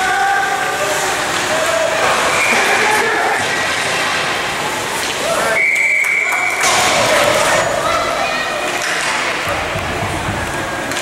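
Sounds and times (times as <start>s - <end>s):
noisy rink din: 0.0s - 11.0s.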